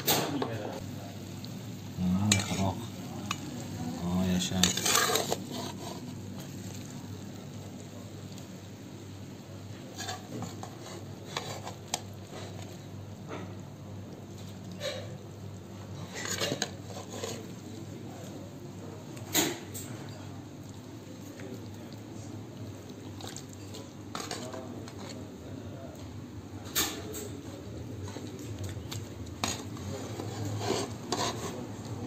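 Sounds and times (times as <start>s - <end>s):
metal skimmer scraping metal pot: 4.5s - 6.1s, 16.0s - 17.5s, 29.4s - 31.6s
ladle scraping a pot: 4.5s - 6.8s, 9.8s - 12.8s, 14.7s - 15.2s, 15.9s - 17.6s, 23.1s - 25.3s, 28.0s - 32.0s.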